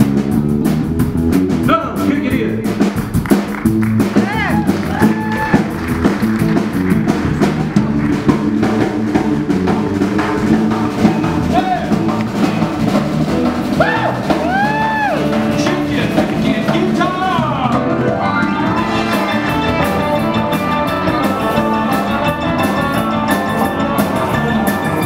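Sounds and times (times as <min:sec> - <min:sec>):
bending long notes: 0:00.0 - 0:25.0
drum-kit beat: 0:00.0 - 0:25.0
rock and roll band playing: 0:00.0 - 0:25.0.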